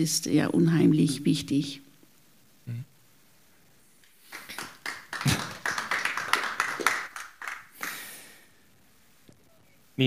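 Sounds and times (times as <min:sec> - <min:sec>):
audience applause: 0:04.3 - 0:08.2.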